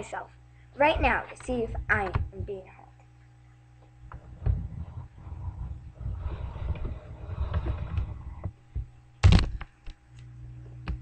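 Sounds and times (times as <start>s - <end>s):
microphone handling noise: 4.1s - 9.8s.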